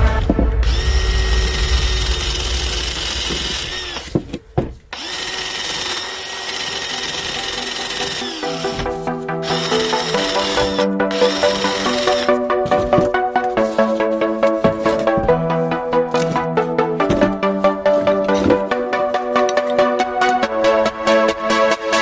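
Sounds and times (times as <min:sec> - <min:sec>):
drill with wire brush scrubbing metal: 0:00.6 - 0:04.3, 0:04.9 - 0:12.4.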